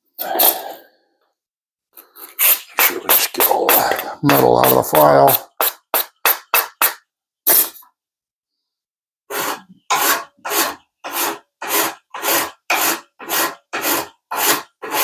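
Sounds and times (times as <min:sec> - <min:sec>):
file rasping on metal: 0:09.3 - 0:15.0.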